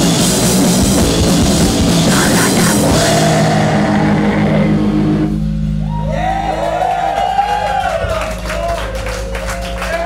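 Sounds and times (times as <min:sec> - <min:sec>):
live rock band playing: 0:00.0 - 0:06.4.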